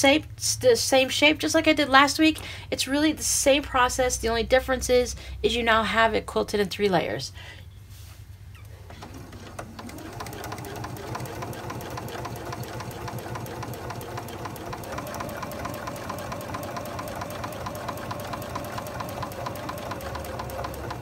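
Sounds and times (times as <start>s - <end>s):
sewing machine stitching: 8.7s - 21.0s.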